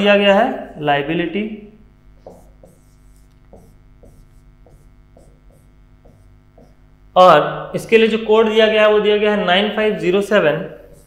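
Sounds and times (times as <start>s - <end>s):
faint mains hum: 0.0s - 11.0s
pen tapping on writing board: 2.2s - 6.8s.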